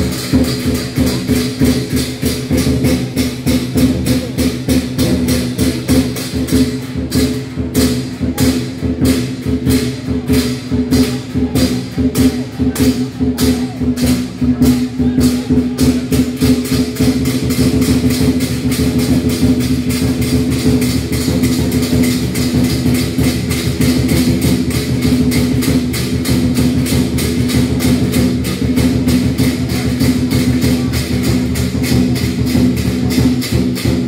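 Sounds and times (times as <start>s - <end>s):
cymbals clashing: 0.0s - 34.0s
drum beating: 0.0s - 34.0s.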